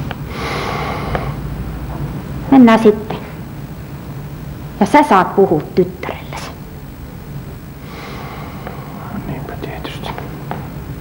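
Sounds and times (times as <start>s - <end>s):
steady low hum: 0.0s - 11.0s
whispered speech: 6.0s - 6.6s, 8.9s - 10.6s.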